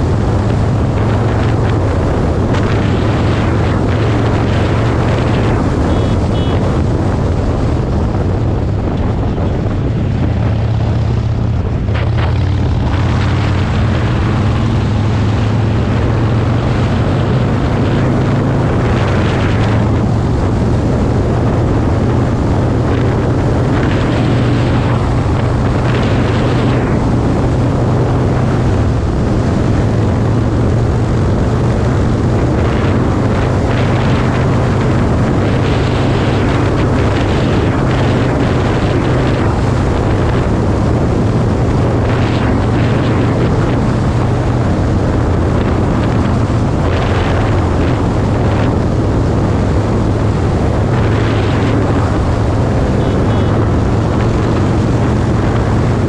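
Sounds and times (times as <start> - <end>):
motorcycle engine running: 0.0 - 56.0
wind rushing over microphone: 0.0 - 56.0.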